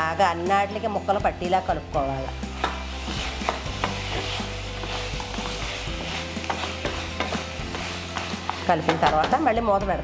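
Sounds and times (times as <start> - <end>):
curry sizzling in a pan: 0.3 - 9.6
spatula scraping a pan: 2.2 - 9.4.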